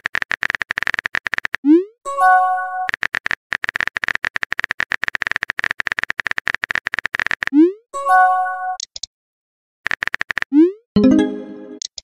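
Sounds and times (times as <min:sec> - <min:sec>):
held synth chord: 0:11.0 - 0:11.8
rising message bloop: 0:11.0 - 0:11.8.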